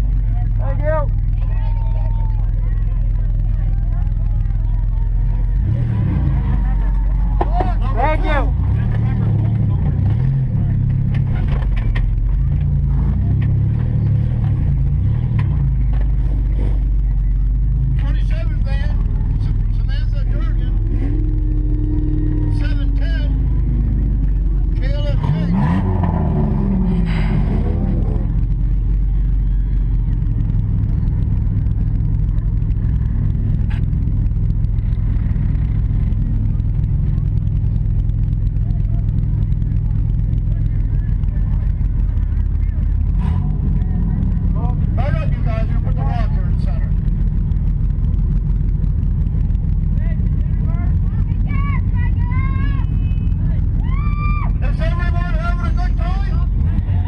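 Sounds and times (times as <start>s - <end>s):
car engine running: 0.0s - 57.0s
voices shouting: 1.0s - 9.2s, 51.0s - 57.0s.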